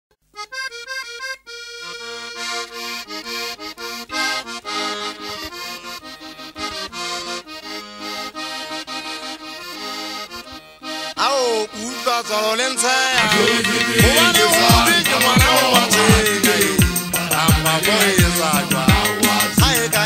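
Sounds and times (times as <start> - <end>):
accordion: 0.3 - 20.0
band with bass and beat: 13.2 - 20.0.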